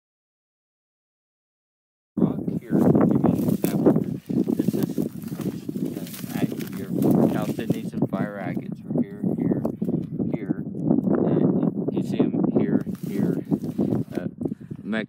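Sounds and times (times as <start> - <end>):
man talking: 2.2 - 15.0.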